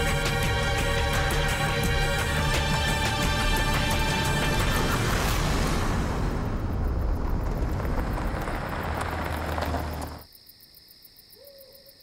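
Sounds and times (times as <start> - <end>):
vehicle driving on dirt road: 2.3 - 10.3.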